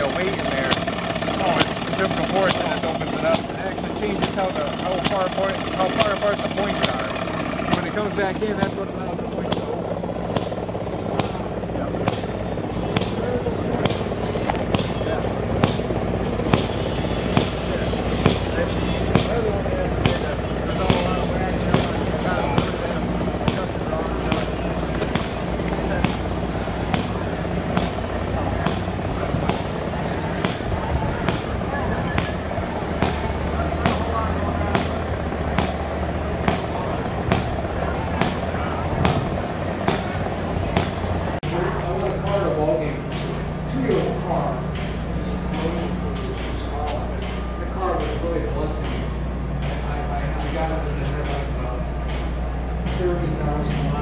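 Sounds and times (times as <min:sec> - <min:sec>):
people talking: 0:00.0 - 0:54.0
steady low hum: 0:00.0 - 0:54.0.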